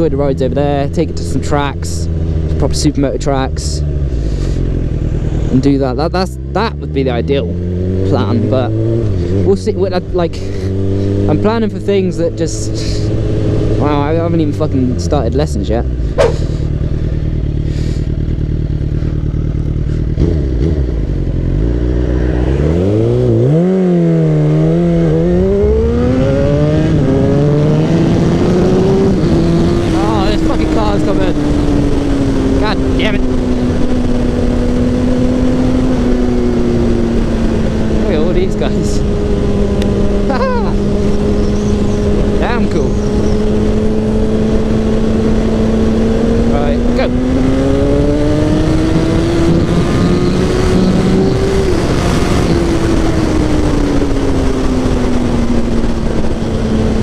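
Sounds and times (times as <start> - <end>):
motorcycle engine revving: 0.0 - 57.0
wind noise from riding: 15.9 - 57.0.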